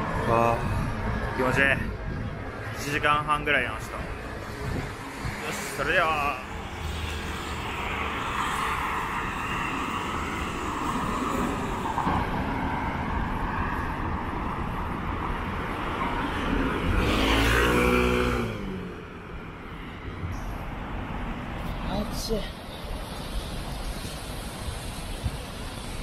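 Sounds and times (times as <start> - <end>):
street traffic: 0.0 - 26.0
motor vehicle passing close: 16.4 - 19.2.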